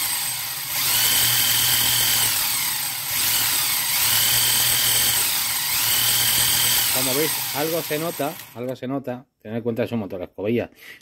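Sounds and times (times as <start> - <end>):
electric motor whine: 0.0 - 8.6.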